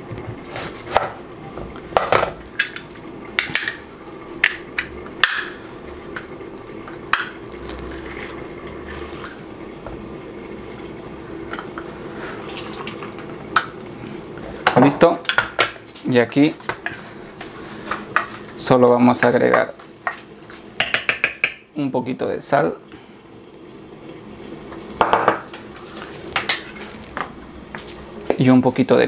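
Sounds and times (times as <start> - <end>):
steady low hum: 0.0 - 29.0
utensils clicking on steel bowl: 20.8 - 21.7.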